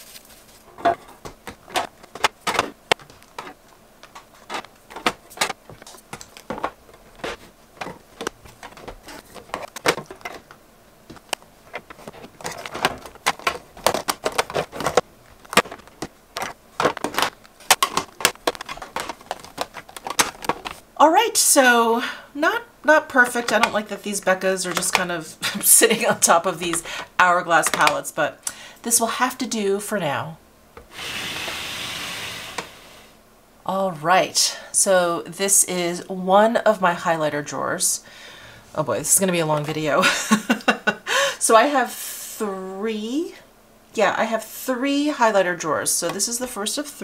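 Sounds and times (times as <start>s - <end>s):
makeup compacts clacking on acrylic: 0.9s - 20.8s.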